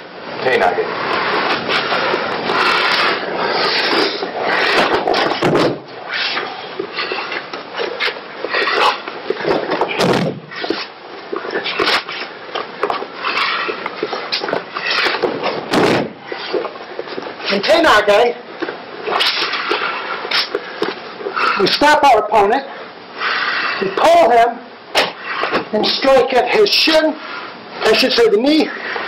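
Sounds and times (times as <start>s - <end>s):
steady noisy background: 0.0s - 29.0s
body thudding onto a mat: 5.3s - 5.9s, 9.9s - 10.5s, 15.3s - 16.2s.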